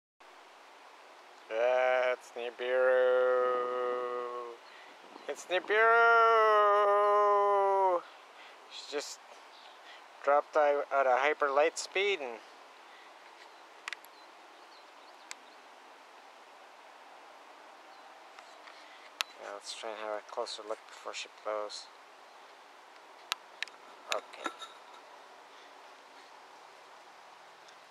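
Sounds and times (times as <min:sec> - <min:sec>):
faint steady hiss: 0:00.2 - 0:27.9
voice holding long syllable: 0:01.5 - 0:04.6, 0:05.5 - 0:08.1.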